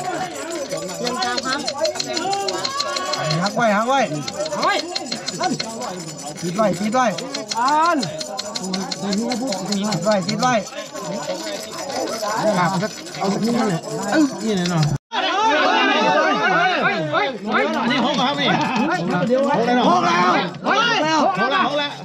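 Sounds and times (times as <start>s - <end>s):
fast ticking: 0.0s - 15.0s, 17.7s - 20.6s
men talking and calling out: 0.0s - 22.0s.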